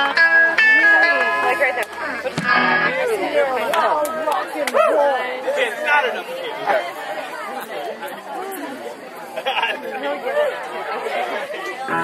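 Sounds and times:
live band guitar notes: 0.0 - 3.6
crowd of people talking: 0.0 - 12.0.

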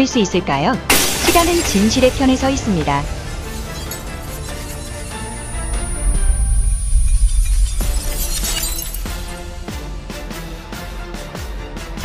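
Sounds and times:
background music: 0.0 - 12.0
deep low boom: 0.9 - 8.4
glass shards tinkling: 0.9 - 9.7.

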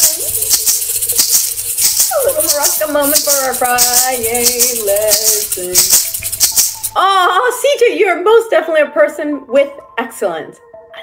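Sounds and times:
maracas shaking: 0.0 - 7.4.

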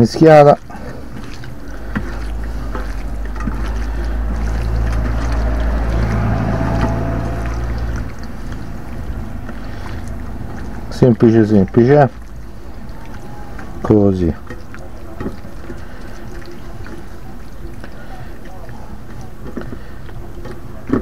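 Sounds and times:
low motor rumble: 0.0 - 21.0.

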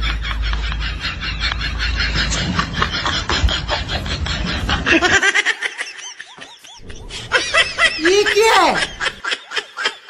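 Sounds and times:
person laughing and giggling: 0.0 - 9.7.

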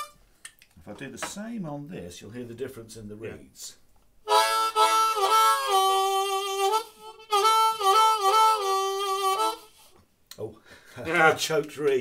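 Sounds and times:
harmonica chords: 0.0 - 0.2, 4.2 - 10.0.

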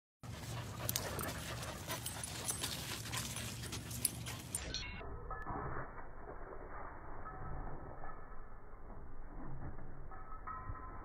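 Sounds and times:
dog panting: 0.2 - 4.7.

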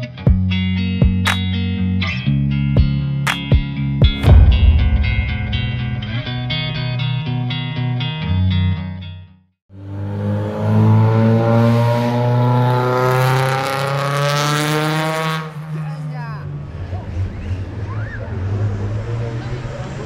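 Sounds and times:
rally car engine accelerating: 9.8 - 15.8.

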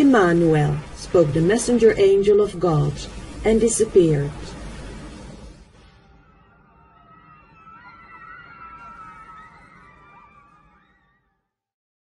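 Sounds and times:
low rumble: 0.0 - 7.1
wavering high tones: 5.8 - 11.2.

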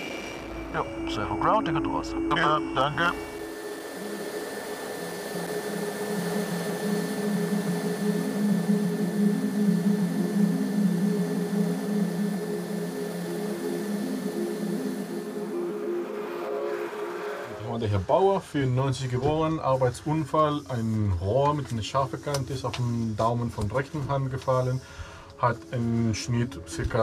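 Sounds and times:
helicopter rotor noise: 0.0 - 24.7
helicopter turbine whine: 0.0 - 27.0.

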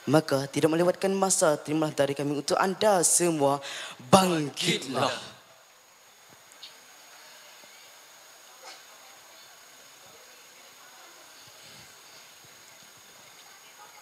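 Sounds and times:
faint high hum: 0.0 - 14.0
sound system hiss: 0.0 - 14.0.

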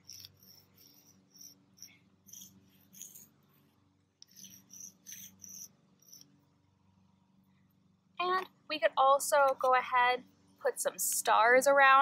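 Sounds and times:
chalk scratching on asphalt: 0.0 - 1.5, 2.3 - 3.3, 4.3 - 6.2.

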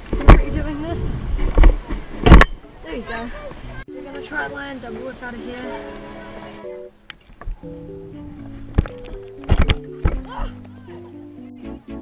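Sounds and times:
wind rumbling on microphone: 0.0 - 3.8.

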